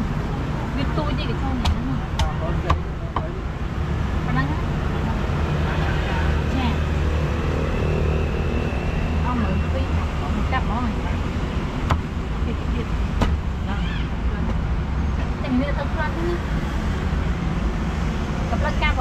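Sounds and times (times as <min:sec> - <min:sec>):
indistinct voices: 0:00.0 - 0:16.7
traffic engines rumbling: 0:00.0 - 0:19.0
sharp knocks: 0:01.6 - 0:03.4, 0:11.8 - 0:12.2, 0:13.2 - 0:13.5.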